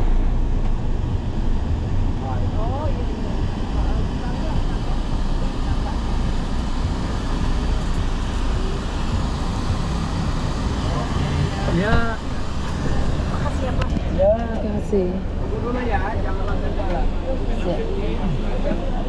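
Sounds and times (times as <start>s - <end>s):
road and engine rumble in vehicle: 0.0s - 19.0s.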